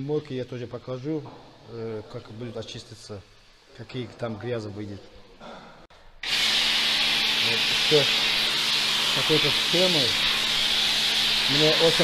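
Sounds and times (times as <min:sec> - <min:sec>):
spray lance hissing: 0:06.2 - 0:12.0.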